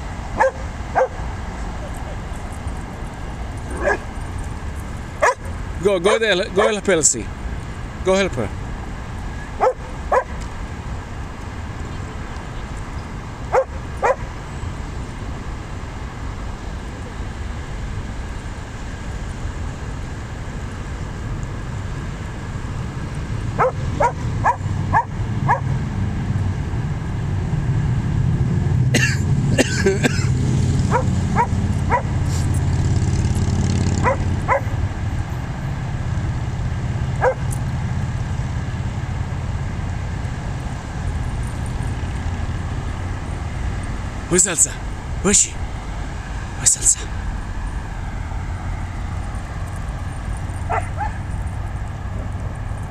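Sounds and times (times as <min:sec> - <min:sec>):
dogs barking: 0:00.3 - 0:02.3, 0:03.5 - 0:04.6, 0:05.2 - 0:05.6, 0:09.4 - 0:10.4, 0:13.4 - 0:14.4, 0:23.5 - 0:25.8, 0:29.0 - 0:32.7, 0:33.8 - 0:34.9, 0:37.2 - 0:37.7, 0:49.7 - 0:52.4.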